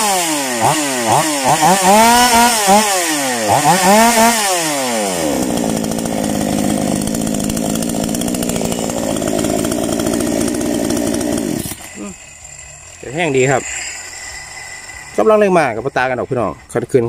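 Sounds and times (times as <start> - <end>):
chainsaw engine running: 0.0 - 17.0.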